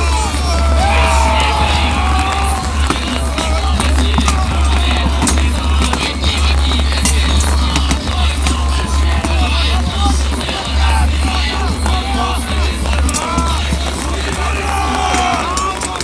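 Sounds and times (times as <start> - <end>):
music playing: 0.0 - 16.0.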